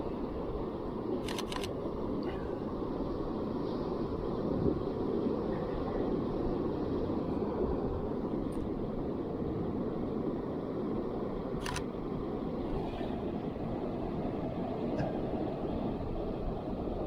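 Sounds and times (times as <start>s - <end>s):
wind: 0.0s - 17.0s
camera shutter click: 1.2s - 1.7s.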